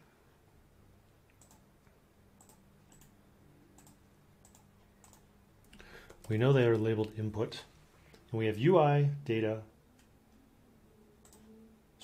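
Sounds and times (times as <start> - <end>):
computer keys clicking: 1.3 - 1.7, 2.4 - 7.2, 11.2 - 11.5.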